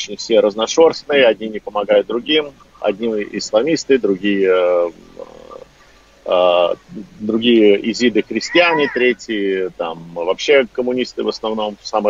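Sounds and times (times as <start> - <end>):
man murmuring: 0.0 - 5.6, 6.3 - 11.8
man hesitating ehh: 2.2 - 5.7, 6.3 - 10.3.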